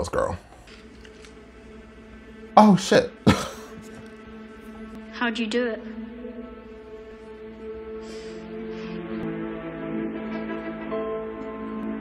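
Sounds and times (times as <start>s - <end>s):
man clearing throat: 3.2s - 3.9s.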